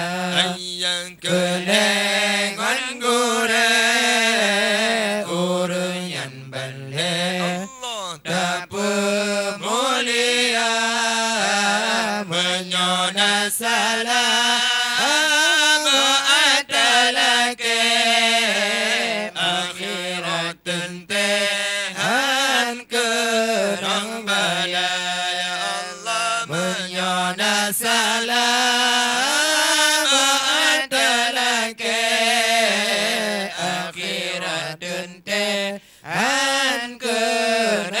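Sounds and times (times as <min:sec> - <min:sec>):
man singing devotional chant: 0:00.0 - 0:38.0.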